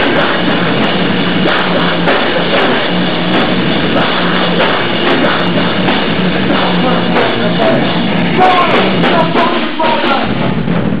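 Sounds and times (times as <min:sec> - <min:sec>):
distorted electric guitars: 0:00.0 - 0:11.0
drum kit: 0:00.0 - 0:11.0.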